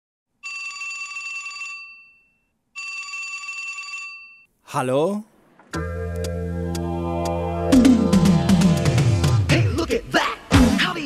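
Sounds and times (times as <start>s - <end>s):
telephone bell ringing: 0.4s - 4.5s.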